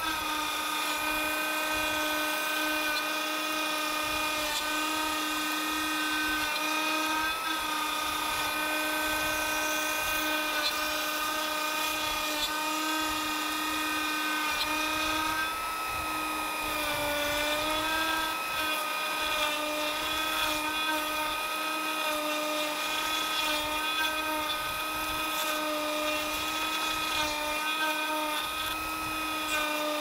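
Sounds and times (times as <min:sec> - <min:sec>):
router motor whining: 0:00.0 - 0:30.0.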